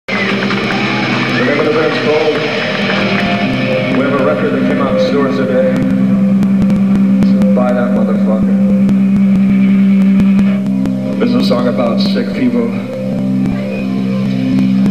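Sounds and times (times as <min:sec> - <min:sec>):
amplifiers droning low note: 0:00.1 - 0:14.9.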